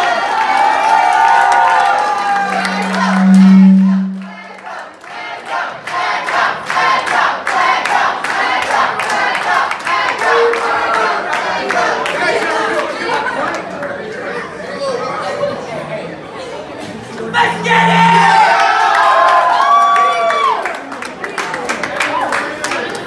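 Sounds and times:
audience applauding and cheering: 0.0 - 3.3, 17.9 - 23.0
loud low note: 2.1 - 4.6, 10.2 - 11.2, 17.0 - 19.0
live band playing: 2.4 - 4.3, 10.2 - 11.1, 17.3 - 18.4.

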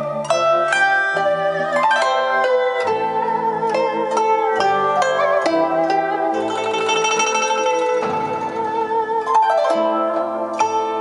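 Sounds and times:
plucked string music: 0.0 - 11.0.

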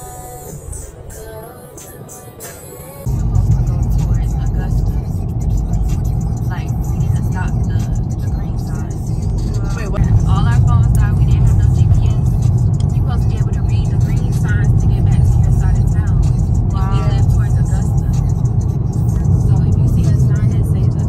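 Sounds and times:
car road noise on highway: 0.0 - 21.0
music with heavy bass and vocals: 0.0 - 21.0.

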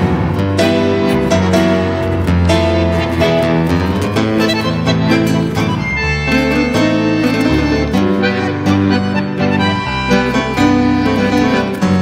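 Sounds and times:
bandoneon chords: 0.0 - 12.0
guitar and piano notes: 0.0 - 12.0.

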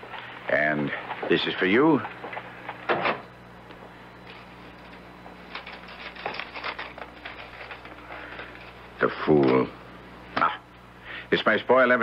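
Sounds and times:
paper rustling and clicks: 4.3 - 9.7.

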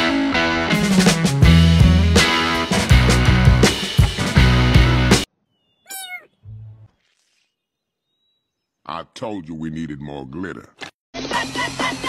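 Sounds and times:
music: 0.0 - 5.3, 11.2 - 12.0.

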